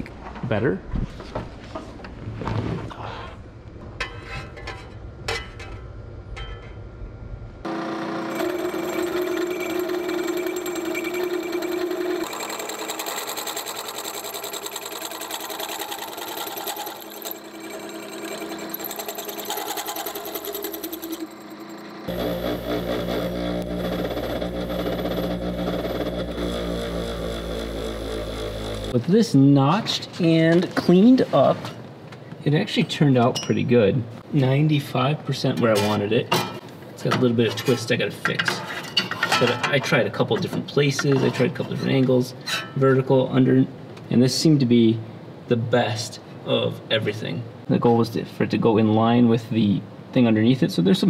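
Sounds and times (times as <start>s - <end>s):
low heavy power tool running: 7.6s - 29.0s
hole saw cutting steel tube: 7.7s - 29.0s.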